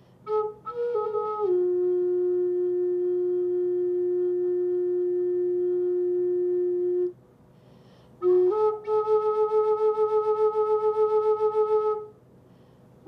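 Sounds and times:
flute holding long note: 0:00.2 - 0:07.2, 0:08.2 - 0:12.2.

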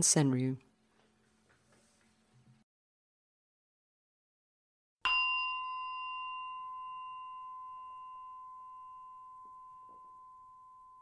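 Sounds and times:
bell-like chime ringing: 0:05.0 - 0:11.0.

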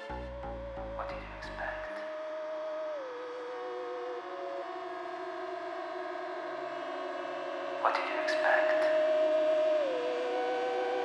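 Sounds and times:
wavering siren-like electronic tone: 0:02.1 - 0:11.0
slowly falling electronic tone: 0:08.6 - 0:11.0.

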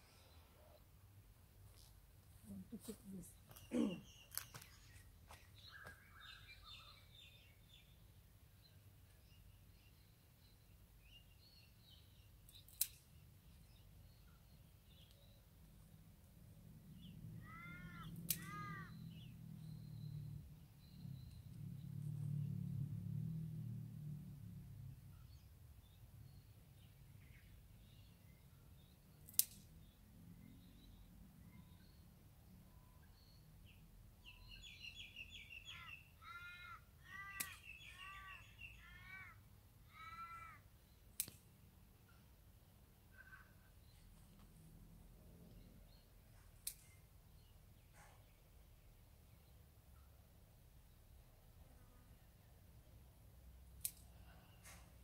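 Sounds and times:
sharp clicks: 0:29.2 - 0:29.8, 0:41.1 - 0:41.5, 0:46.6 - 0:47.0
crow cawing: 0:35.8 - 0:40.6.

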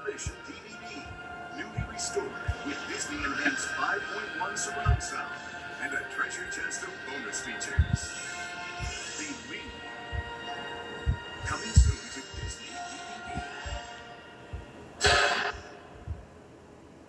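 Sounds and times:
dull low thumps: 0:00.0 - 0:03.3, 0:04.8 - 0:05.2, 0:07.7 - 0:08.2, 0:08.8 - 0:12.6, 0:13.3 - 0:13.9, 0:14.5 - 0:16.3
trailer music through speakers: 0:00.0 - 0:16.2.

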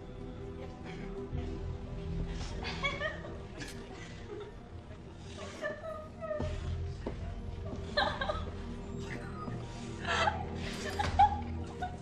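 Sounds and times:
low sustained music score: 0:00.0 - 0:12.0
woman crying and sobbing: 0:00.5 - 0:12.0.

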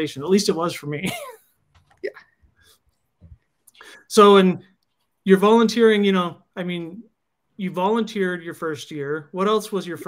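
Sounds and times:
person speaking: 0:00.0 - 0:10.0
faint breaths: 0:02.5 - 0:04.1.

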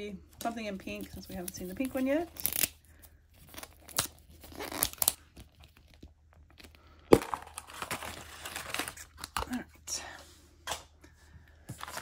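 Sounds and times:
plastic wrapping crinkling: 0:00.8 - 0:09.6.

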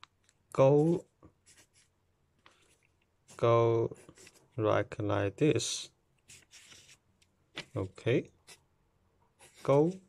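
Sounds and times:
pen scratching on paper: 0:00.8 - 0:01.9, 0:03.3 - 0:04.5, 0:06.3 - 0:07.0, 0:09.4 - 0:10.0.

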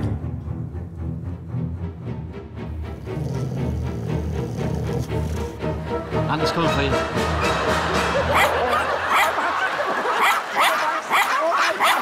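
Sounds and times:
small dog yapping: 0:10.2 - 0:12.0.

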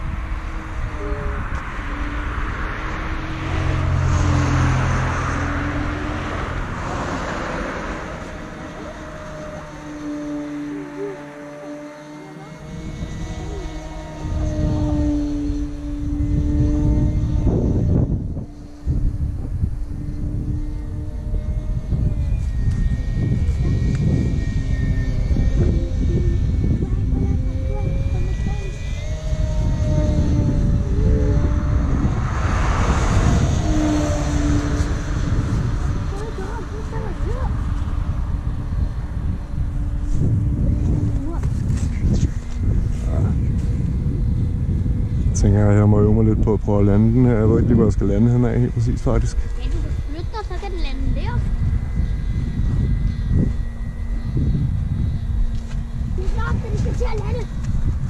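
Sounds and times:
model plane motor droning: 0:00.0 - 0:58.0
wind rumble on microphone: 0:00.0 - 0:58.0.

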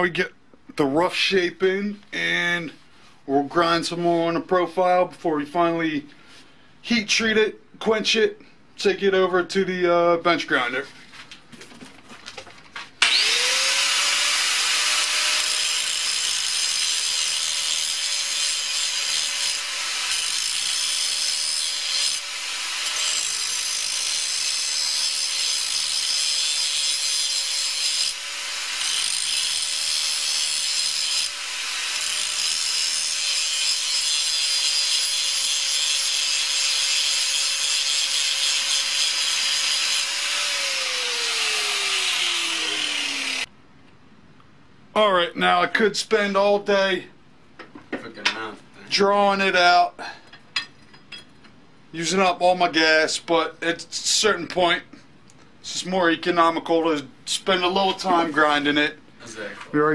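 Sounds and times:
angle grinder grinding steel: 0:13.0 - 0:43.5.

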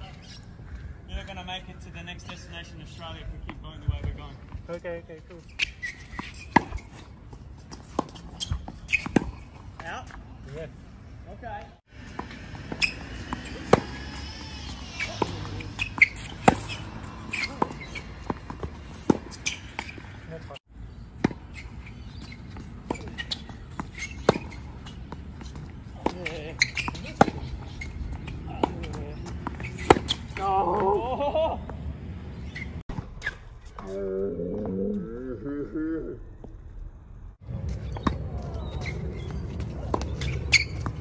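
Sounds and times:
racket hitting tennis ball: 0:05.6 - 0:09.8, 0:12.0 - 0:20.3, 0:21.2 - 0:31.0
tennis ball bouncing: 0:05.7 - 0:09.8, 0:12.0 - 0:20.3, 0:21.2 - 0:33.1, 0:37.5 - 0:41.0
footsteps on court: 0:37.4 - 0:41.0.

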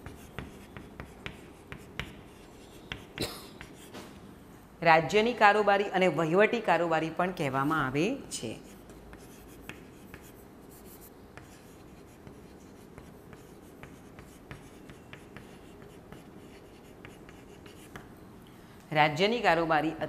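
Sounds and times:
chalk tapping and scratching: 0:00.0 - 0:04.1, 0:08.5 - 0:18.1.

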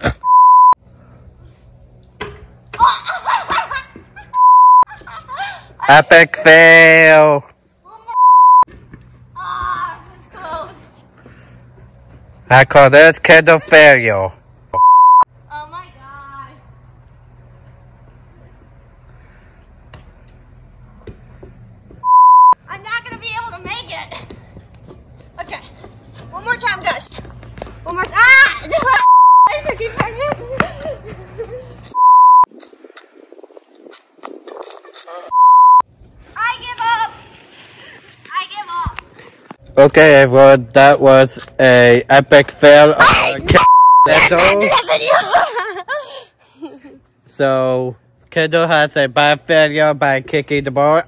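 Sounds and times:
loud electronic bleep tone: 0:00.2 - 0:00.8, 0:04.4 - 0:04.9, 0:08.2 - 0:08.7, 0:14.8 - 0:15.3, 0:22.0 - 0:22.6, 0:29.0 - 0:29.5, 0:32.0 - 0:32.5, 0:35.3 - 0:35.8, 0:43.6 - 0:44.2
child yelling: 0:27.9 - 0:30.3.

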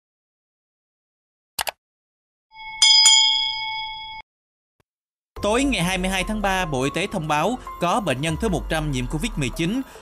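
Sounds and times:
bright bell ding: 0:02.5 - 0:04.2.

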